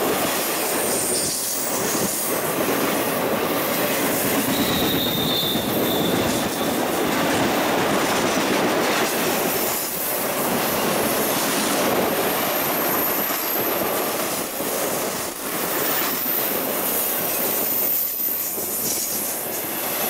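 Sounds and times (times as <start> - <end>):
train wheels rumbling on rail: 0.0 - 20.0
high wheel squeal: 4.4 - 6.8.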